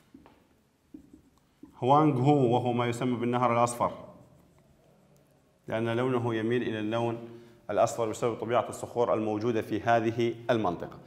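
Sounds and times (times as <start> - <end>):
marker pen on whiteboard: 0.0 - 11.0.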